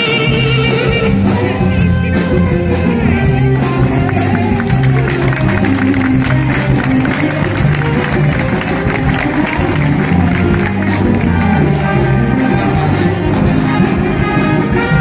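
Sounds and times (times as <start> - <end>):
big band playing: 0.0 - 15.0
trumpets: 0.0 - 15.0.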